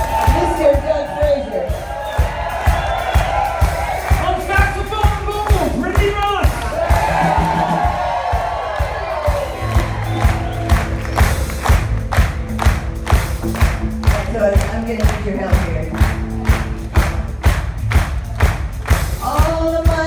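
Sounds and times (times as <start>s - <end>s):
drum kit steady beat: 0.0s - 20.0s
rock band playing: 0.0s - 20.0s.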